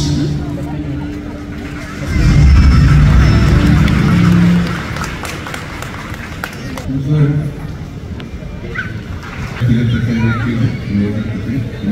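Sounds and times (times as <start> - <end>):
crowd murmur: 0.0 - 11.9
crowd cheering: 1.6 - 6.9
live band music: 2.1 - 5.5.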